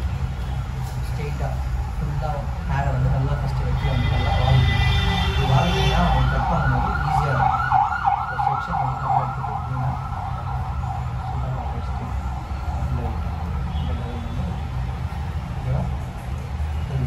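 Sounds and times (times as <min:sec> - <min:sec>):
siren wailing: 0:05.1 - 0:15.1.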